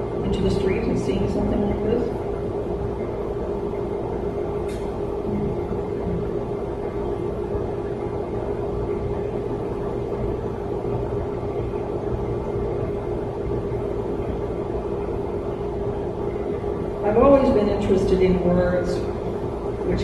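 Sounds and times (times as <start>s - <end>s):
room hum and low rumble: 0.0s - 20.0s.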